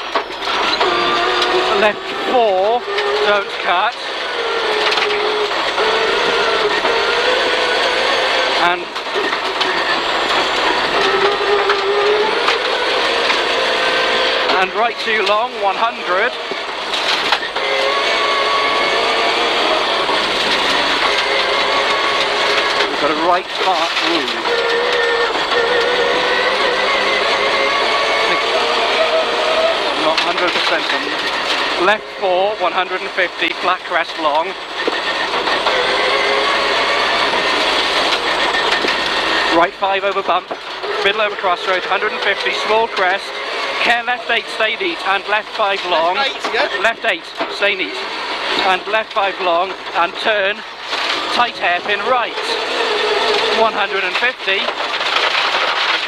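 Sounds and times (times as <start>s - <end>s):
rally car engine running hard: 0.0s - 56.0s
road and tyre noise: 0.0s - 56.0s.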